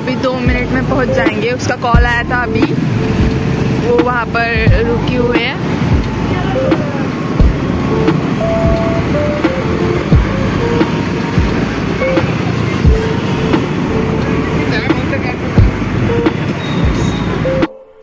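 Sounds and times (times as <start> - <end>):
wind and road noise: 0.0 - 17.8
low thumps: 0.4 - 17.8
vehicle horn beeps: 16.2 - 17.7.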